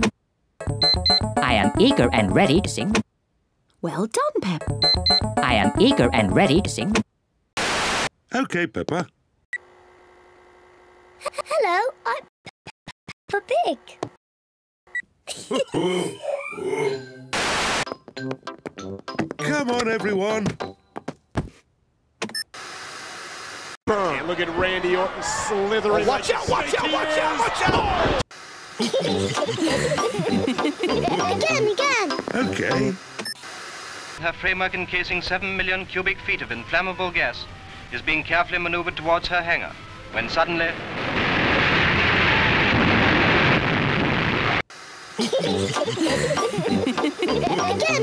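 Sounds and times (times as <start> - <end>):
television static hiss: 28.4 - 34.3, 43.2 - 48.0
explosion roar: 40.7 - 44.6.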